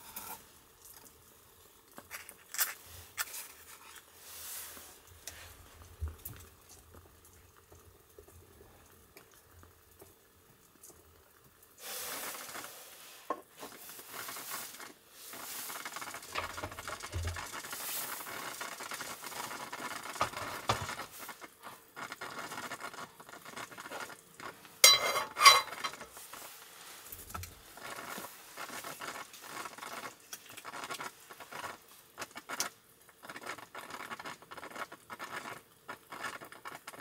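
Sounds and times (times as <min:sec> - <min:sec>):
cookware rustling and knocking: 0:16.3 - 0:17.6, 0:24.8 - 0:26.2.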